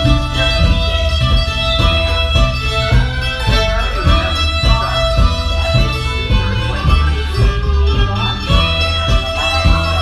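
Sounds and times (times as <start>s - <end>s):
bowed fiddle: 0.0s - 10.0s
plucked upright bass: 0.0s - 10.0s
strummed acoustic guitar: 0.0s - 10.0s.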